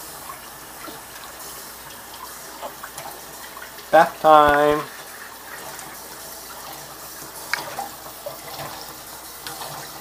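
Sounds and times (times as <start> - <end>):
water running into metal sink: 0.0 - 10.0.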